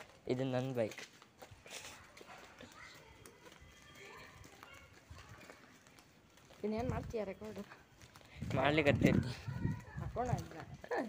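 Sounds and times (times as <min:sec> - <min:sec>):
faint footsteps: 0:00.0 - 0:11.0.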